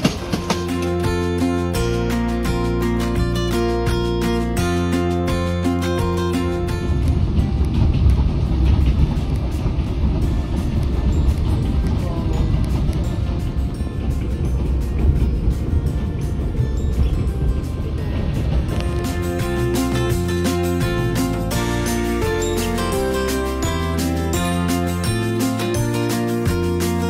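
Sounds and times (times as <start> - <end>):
background music: 0.0 - 27.0
train rumble: 0.0 - 27.0.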